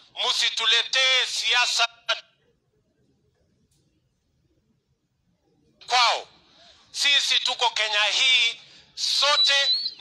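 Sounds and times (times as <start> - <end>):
man speaking into a microphone: 0.0 - 2.3, 5.8 - 10.0.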